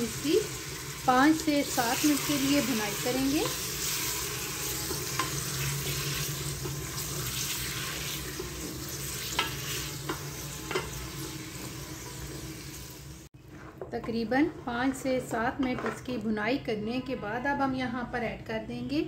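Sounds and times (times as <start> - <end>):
meat sizzling in pot: 0.0 - 13.4
wooden spatula scraping pot: 1.9 - 12.3.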